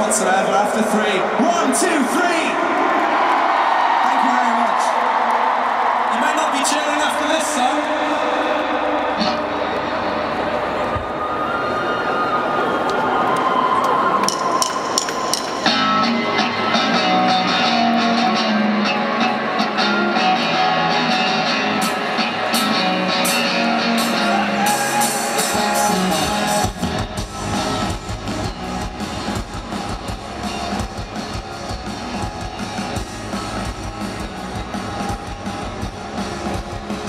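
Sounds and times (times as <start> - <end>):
crowd cheering and screaming: 0.0 - 37.0
live rock band playing: 14.5 - 37.0.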